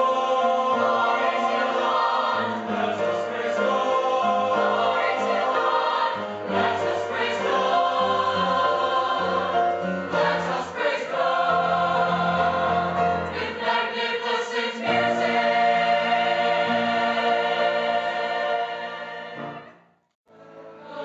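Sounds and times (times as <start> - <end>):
mixed choir singing chords: 0.0 - 19.8, 20.4 - 21.0.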